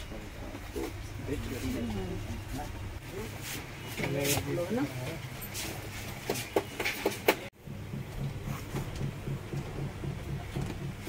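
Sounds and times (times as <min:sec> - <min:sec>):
pulsing mechanical hum: 0:07.6 - 0:11.0.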